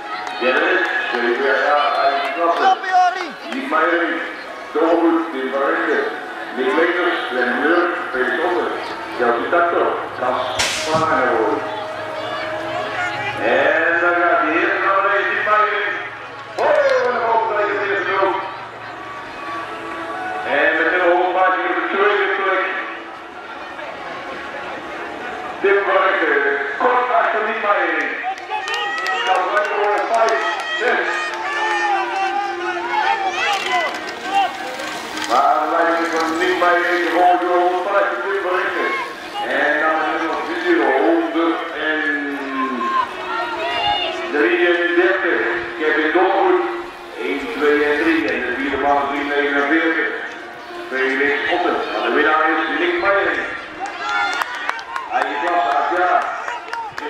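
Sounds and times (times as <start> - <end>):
background music: 0.0 - 56.4.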